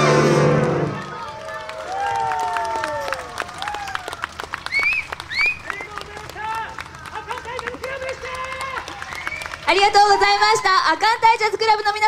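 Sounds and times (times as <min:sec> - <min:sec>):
audience clapping: 0:00.3 - 0:10.3.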